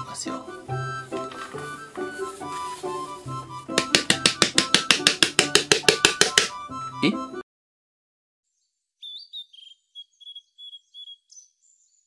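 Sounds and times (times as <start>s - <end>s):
background music: 0.0s - 7.4s
rapid hand taps on plastic bottle: 3.7s - 6.6s.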